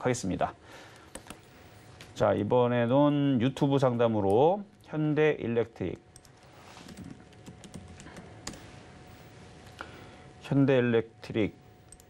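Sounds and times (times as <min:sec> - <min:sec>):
computer keyboard keystrokes: 0:00.9 - 0:01.5, 0:06.2 - 0:08.6.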